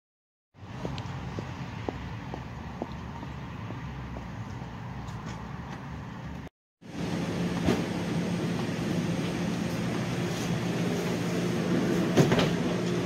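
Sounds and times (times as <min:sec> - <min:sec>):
refrigeration hum: 0:06.9 - 0:13.0.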